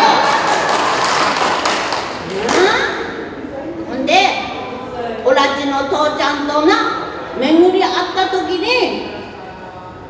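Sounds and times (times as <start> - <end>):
audience clapping: 0.0 - 2.8.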